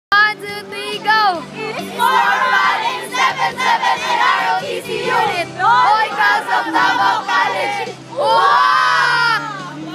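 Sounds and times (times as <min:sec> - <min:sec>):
group shouting a cheer: 0:05.8 - 0:09.6.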